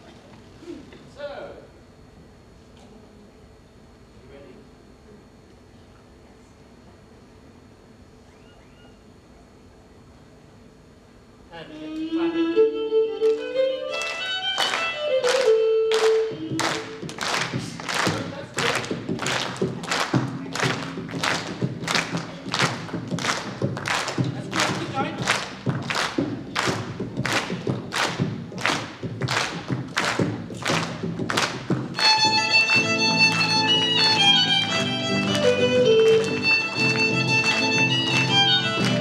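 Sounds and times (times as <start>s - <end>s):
violin melody: 11.8s - 17.0s, 31.9s - 39.0s
music: 11.8s - 39.0s
audience clapping in time: 13.2s - 39.0s.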